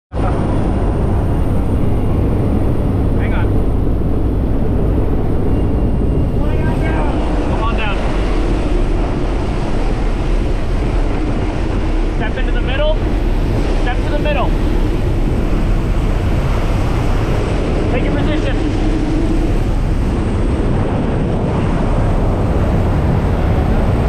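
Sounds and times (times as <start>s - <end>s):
airplane engine and propeller drone: 0.1s - 24.0s
wind rushing: 0.1s - 24.0s.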